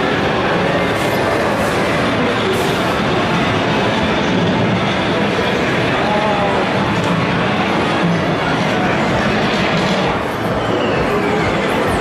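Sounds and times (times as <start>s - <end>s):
video arcade game machines din: 0.0s - 12.0s.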